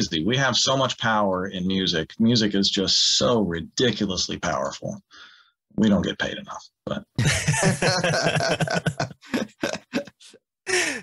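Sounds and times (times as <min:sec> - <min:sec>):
men laughing together: 0:07.2 - 0:11.0.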